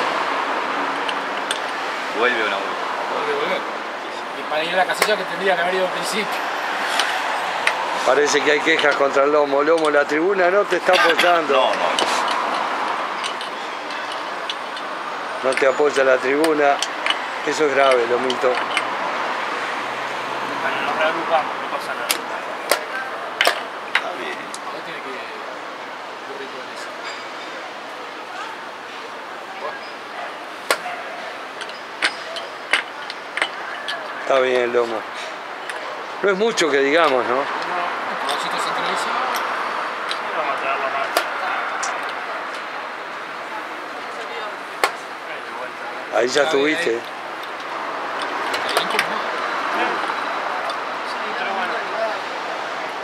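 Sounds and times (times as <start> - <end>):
murmur of voices: 0.6 - 53.0.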